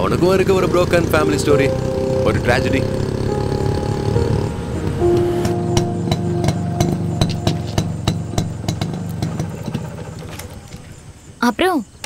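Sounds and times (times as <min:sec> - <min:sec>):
motorcycle engine idling: 0:00.0 - 0:11.2.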